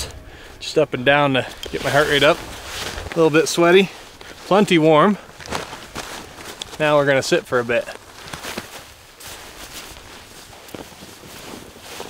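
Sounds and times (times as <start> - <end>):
wind noise: 0.0 - 4.5
clothing rustling: 0.0 - 12.0
footsteps crunching in snow: 0.4 - 12.0.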